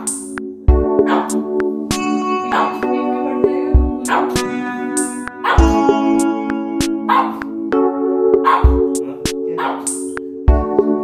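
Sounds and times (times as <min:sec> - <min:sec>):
rhythmic background music: 0:00.0 - 0:11.0
dog barking short barks: 0:01.0 - 0:01.4, 0:07.1 - 0:07.4, 0:08.4 - 0:08.7, 0:09.6 - 0:09.9.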